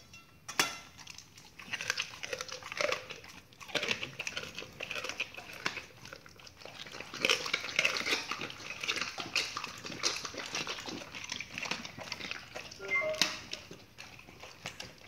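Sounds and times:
dogs chewing raw meat: 0.9 - 15.0.

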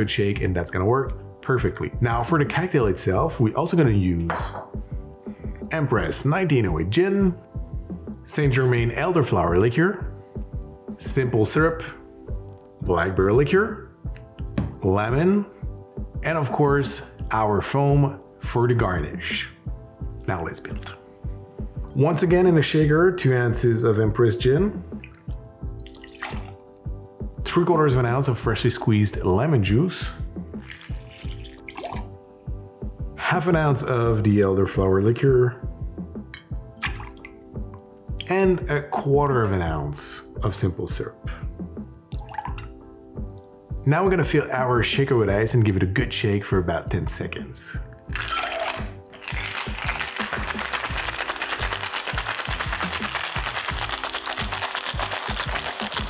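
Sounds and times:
background music with steady beat: 0.0 - 56.0
liquid pouring in thin stream: 25.0 - 26.6, 30.6 - 32.2, 36.8 - 37.3, 42.2 - 42.7, 48.2 - 56.0
ice rattling in cocktail shaker: 30.6 - 32.1, 48.2 - 56.0.

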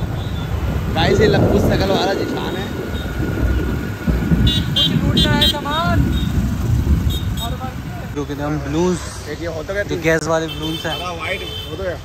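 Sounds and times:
wind rumble on microphone: 0.0 - 8.2
street traffic: 0.0 - 12.0.

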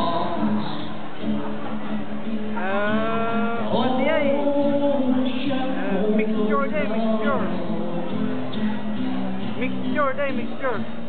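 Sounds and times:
acoustic guitar: 0.0 - 11.0
man singing long vowel: 2.6 - 8.2.

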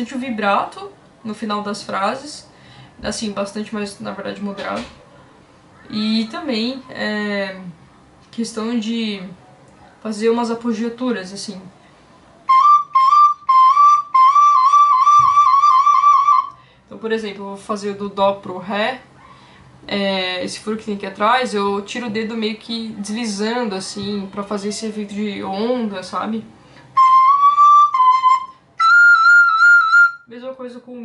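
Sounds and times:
recorder playing with vibrato: 12.5 - 16.6, 27.0 - 30.3.

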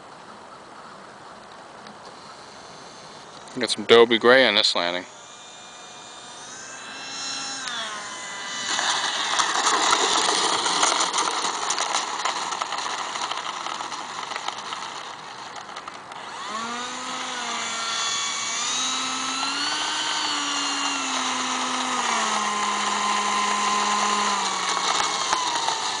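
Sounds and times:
model jet fan whining: 1.8 - 26.0.

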